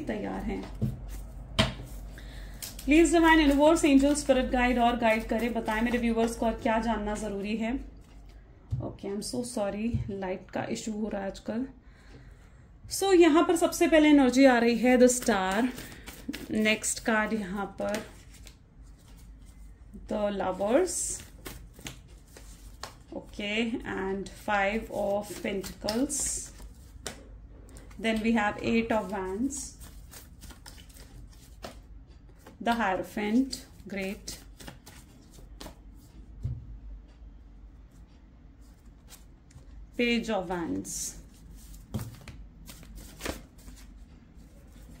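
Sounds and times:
cards being shuffled: 0.5 - 6.7, 8.0 - 8.4, 14.8 - 19.7, 20.6 - 23.2, 24.3 - 33.0, 33.6 - 36.5, 41.2 - 45.0
cards clicking and slapping: 15.1 - 16.6, 21.2 - 23.0, 25.2 - 27.2, 29.8 - 31.8, 34.3 - 35.8, 41.6 - 43.9.

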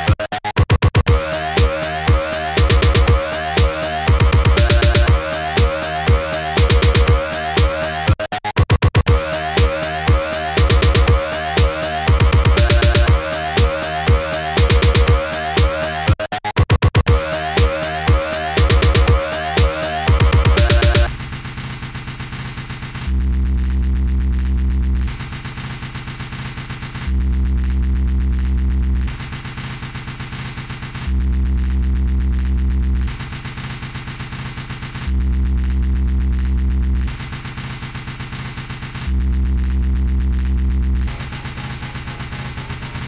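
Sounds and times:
fast steady pulse: 1.1 - 8.0, 9.1 - 16.0
buzzing synth loop: 1.1 - 8.2, 9.1 - 16.1, 17.1 - 21.2.

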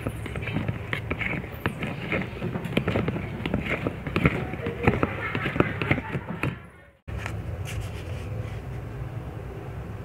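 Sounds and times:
spatula tapping plastic cup: 0.0 - 6.6
spatula stirring liquid in cup: 0.0 - 6.8.

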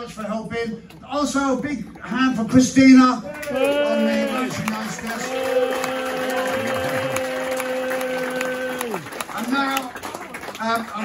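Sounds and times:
audience applauding lightly: 3.3 - 11.0.

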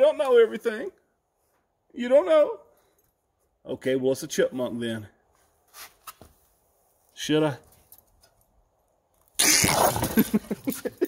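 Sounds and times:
soft rustle: 5.2 - 9.3.

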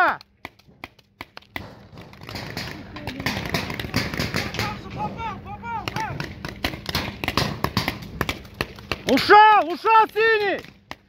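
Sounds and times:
paintball markers firing: 0.0 - 5.0, 5.7 - 11.0.

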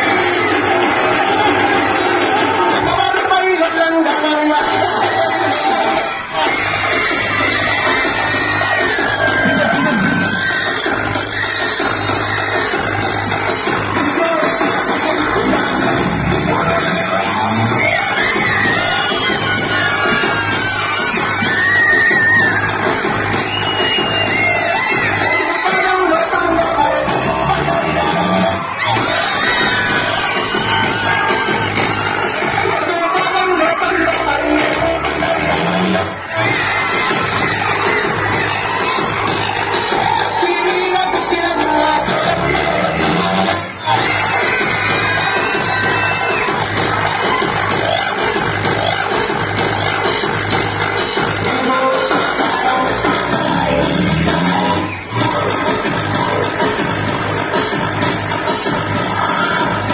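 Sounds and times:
song over loudspeaker: 0.0 - 59.9.

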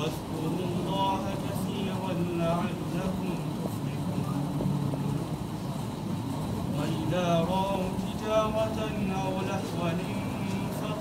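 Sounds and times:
man chanting melodically: 0.0 - 5.6, 6.6 - 11.0.

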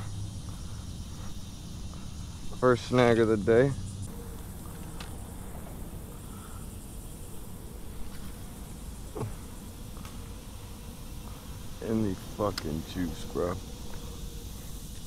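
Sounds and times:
faint insect buzz: 0.0 - 15.0.

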